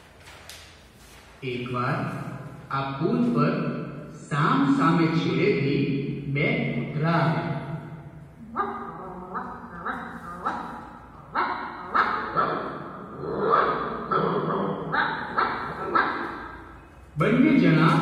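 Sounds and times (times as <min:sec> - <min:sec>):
cartoon dogs barking and snarling: 0:08.4 - 0:16.6.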